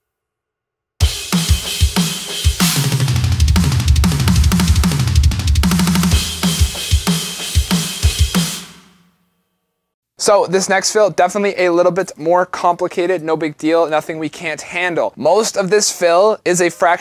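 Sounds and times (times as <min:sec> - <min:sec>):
kick drum hits: 0:01.0 - 0:08.4
snare drum hits: 0:01.0 - 0:09.0
tom drum strokes: 0:01.0 - 0:09.0.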